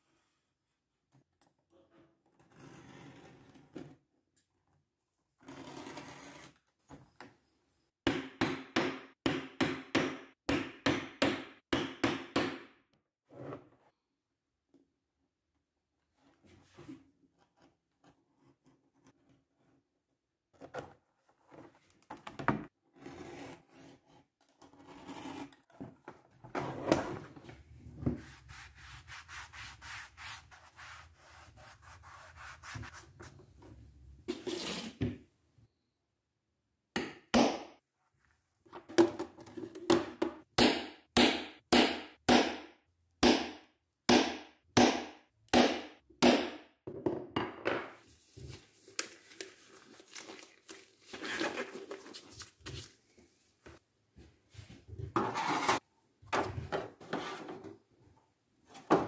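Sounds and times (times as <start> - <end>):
back-and-forth rubbing strokes: 28.2 - 33.4.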